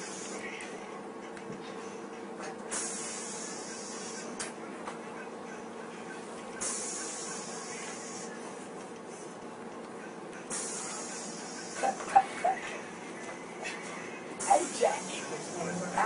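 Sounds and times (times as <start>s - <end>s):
bus interior low hum: 0.0s - 16.0s
short high hiss bursts: 2.7s - 4.3s.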